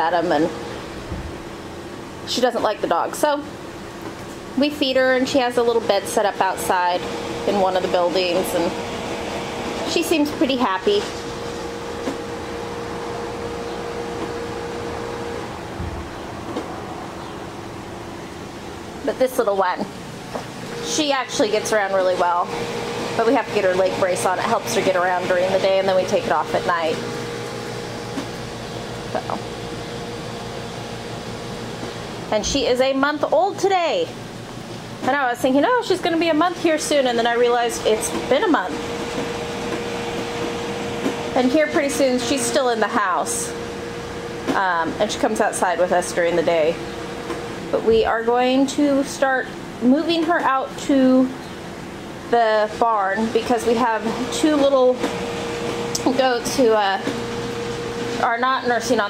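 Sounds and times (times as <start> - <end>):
electric fan running: 0.0 - 59.0
steady machine hum: 0.0 - 59.0.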